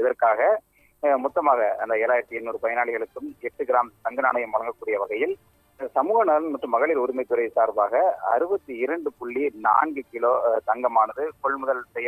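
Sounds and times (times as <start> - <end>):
man speaking over telephone: 0.0 - 12.0.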